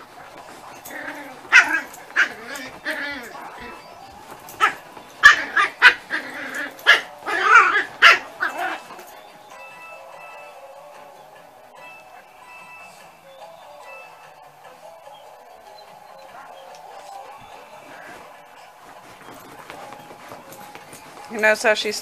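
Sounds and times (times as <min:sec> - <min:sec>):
dogs barking and yipping: 0:00.0 - 0:22.0.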